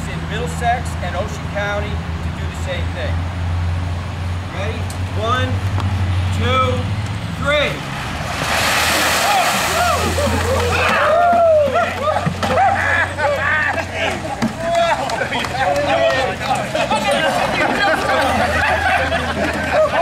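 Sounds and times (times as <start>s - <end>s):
ice water splashing: 8.1s - 11.2s
men shouting and laughing: 9.0s - 20.0s.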